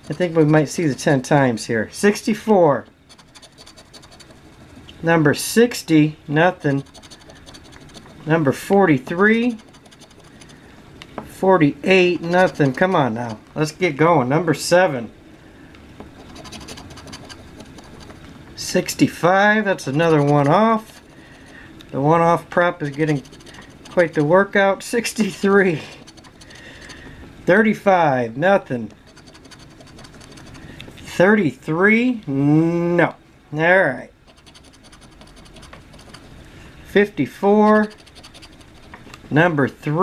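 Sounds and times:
coin scratching lottery ticket: 0.0s - 1.3s, 3.1s - 10.6s, 11.9s - 13.4s, 16.2s - 21.5s, 22.2s - 27.0s, 29.0s - 30.7s, 34.2s - 36.3s, 37.5s - 39.0s.

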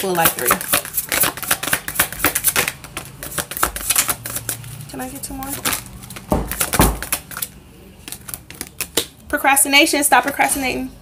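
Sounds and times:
cards being shuffled: 0.2s - 9.3s.

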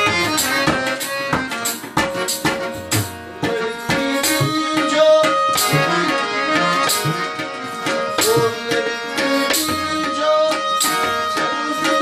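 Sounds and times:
tabla strokes: 0.0s - 10.2s
harmonium playing chords: 0.0s - 12.0s
man singing: 3.4s - 12.0s.

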